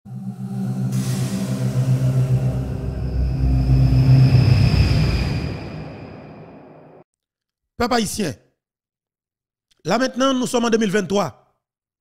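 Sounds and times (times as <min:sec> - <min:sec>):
whooshing swell: 0:00.0 - 0:07.0
deep rumble: 0:00.1 - 0:07.0
held music chords: 0:00.1 - 0:07.0.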